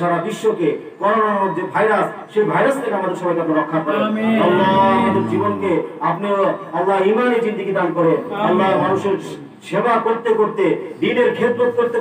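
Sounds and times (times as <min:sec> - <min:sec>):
man chanting a prayer: 0:03.7 - 0:06.2.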